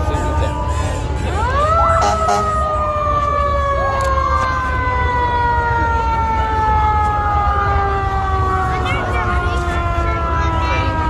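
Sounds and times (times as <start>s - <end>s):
vehicle siren wailing: 0.0s - 11.0s.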